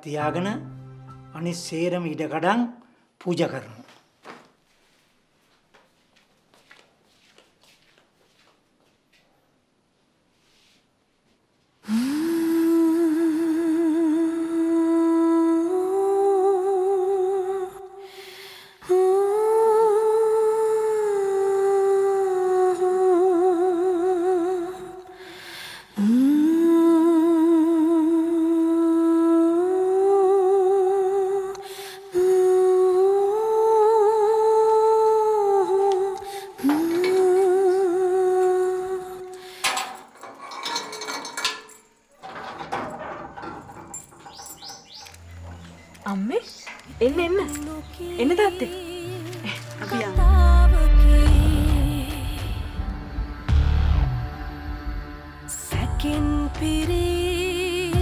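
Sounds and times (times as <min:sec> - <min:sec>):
person humming mournful melody: 0:11.9 - 0:18.0, 0:18.8 - 0:25.2, 0:26.0 - 0:39.6, 0:47.8 - 0:58.0.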